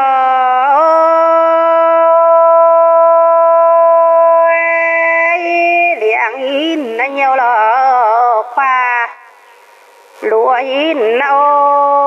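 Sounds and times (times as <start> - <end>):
woman singing: 0.0 - 9.2, 10.2 - 12.0.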